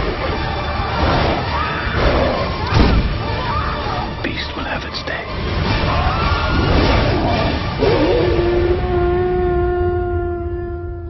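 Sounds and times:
long howl: 0:05.8 - 0:11.0.

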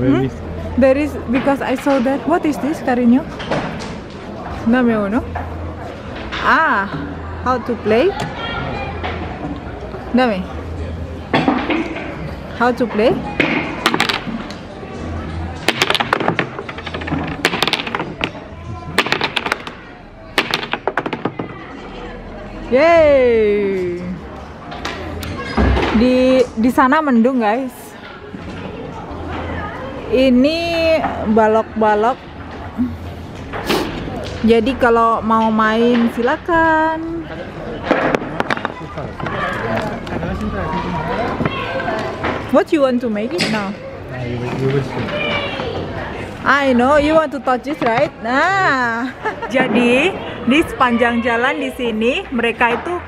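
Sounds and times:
small ball clattering down wooden board: 0:13.4 - 0:14.4, 0:15.6 - 0:19.8, 0:20.4 - 0:21.6, 0:37.8 - 0:39.4
wooden blocks clacking: 0:13.4 - 0:14.6, 0:15.6 - 0:21.9, 0:37.8 - 0:40.5
people talking: 0:38.7 - 0:53.0.

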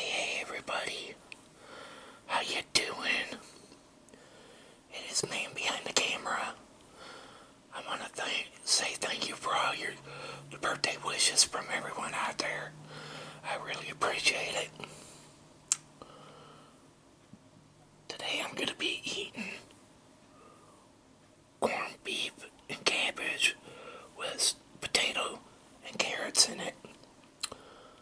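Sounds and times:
person whispering: 0:00.0 - 0:01.2, 0:02.3 - 0:03.5, 0:04.9 - 0:06.6, 0:07.7 - 0:12.8, 0:13.4 - 0:14.9, 0:18.1 - 0:19.7, 0:21.6 - 0:23.6, 0:24.2 - 0:26.9
low steady hum: 0:00.0 - 0:28.0.

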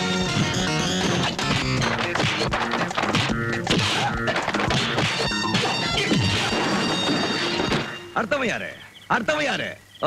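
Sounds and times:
background music score: 0:00.0 - 0:09.4
punch sound effects: 0:01.9 - 0:07.9.

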